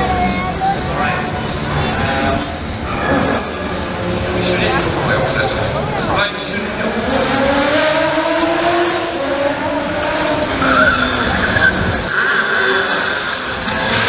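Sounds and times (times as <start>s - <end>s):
car engines revving: 0.0s - 14.0s
tyres squealing on tarmac: 10.2s - 14.0s.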